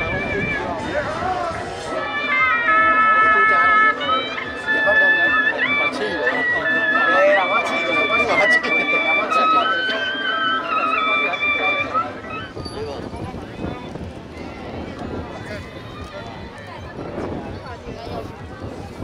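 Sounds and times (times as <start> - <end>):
shawm playing a melody: 0.0 - 13.0
crowd chatter: 0.0 - 19.0.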